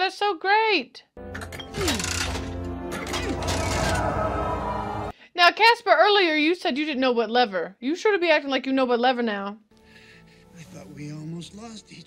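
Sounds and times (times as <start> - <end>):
orchestral music: 1.2 - 5.1, 9.8 - 12.0
machine creaking and whirring: 1.4 - 4.4.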